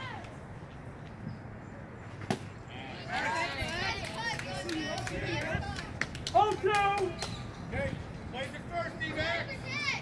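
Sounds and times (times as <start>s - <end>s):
baseball smacking into a mitt: 2.2s - 2.5s.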